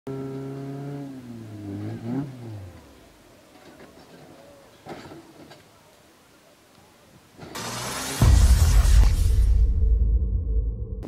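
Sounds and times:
vehicle: 0.1 - 9.8
faint voices: 3.0 - 7.4.

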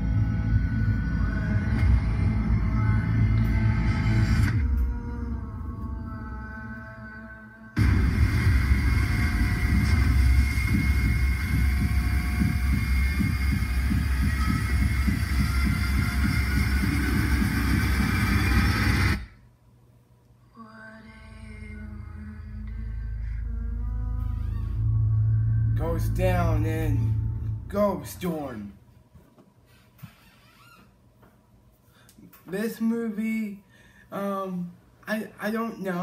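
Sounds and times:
dark ominous music: 0.0 - 7.0, 7.8 - 19.2, 22.0 - 28.2
deep rumble: 0.0 - 19.3, 21.1 - 28.8.

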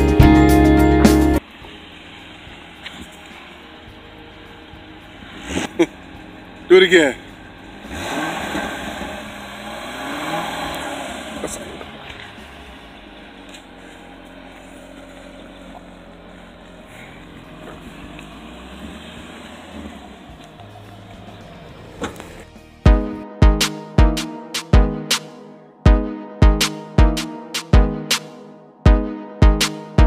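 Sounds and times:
car engine revving and idling: 0.0 - 23.0.

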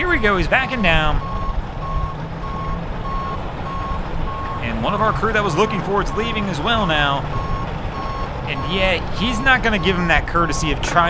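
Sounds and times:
reversing alarm beeping: 0.6 - 10.7.

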